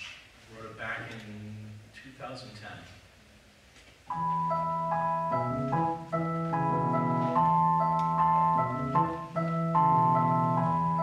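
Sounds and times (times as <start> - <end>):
digital keyboard chords: 4.1 - 11.0.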